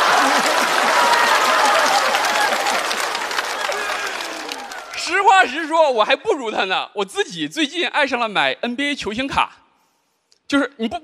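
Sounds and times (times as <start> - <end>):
audience laughing: 0.0 - 4.6
audience clapping: 0.0 - 5.6.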